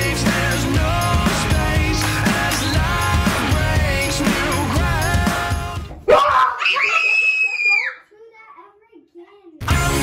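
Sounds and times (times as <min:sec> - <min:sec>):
background music: 0:00.0 - 0:06.1, 0:09.6 - 0:10.0
girl screaming: 0:06.1 - 0:08.1.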